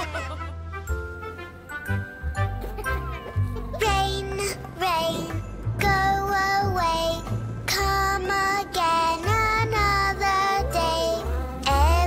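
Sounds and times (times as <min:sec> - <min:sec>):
cartoon song music with bass: 0:00.0 - 0:12.0.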